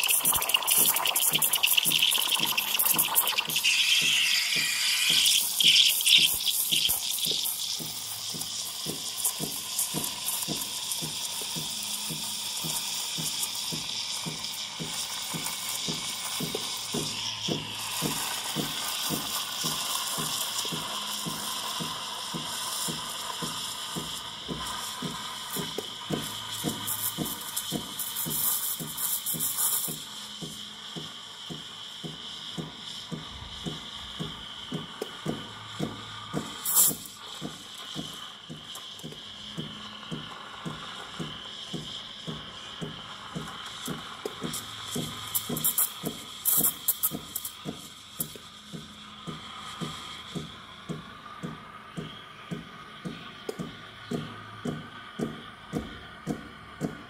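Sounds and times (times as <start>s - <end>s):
steam wand frothing milk: 0.0s - 57.0s.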